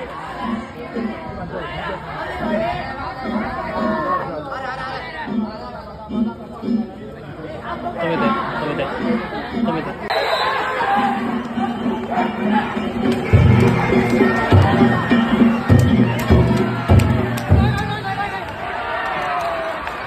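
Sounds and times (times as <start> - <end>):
crowd talking and calling out: 0.0 - 20.0.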